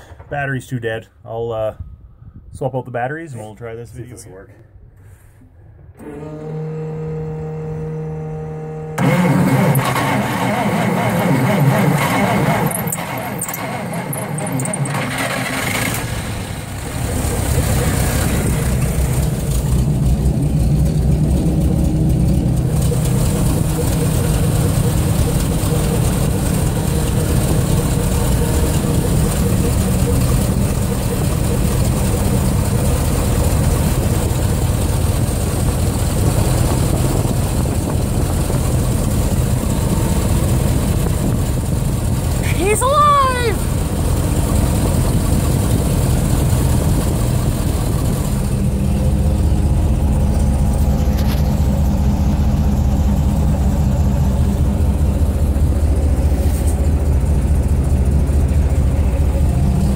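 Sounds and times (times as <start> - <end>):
engine starting and running: 4.9 - 59.9.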